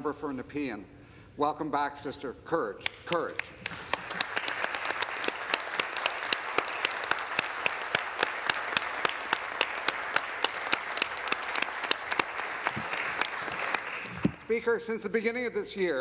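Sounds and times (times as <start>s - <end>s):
single sharp claps: 2.8s - 14.4s
group clapping: 2.8s - 14.5s.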